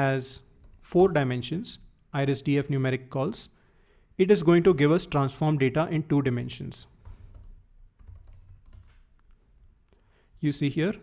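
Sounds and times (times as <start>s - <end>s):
faint keyboard typing: 6.9s - 9.4s.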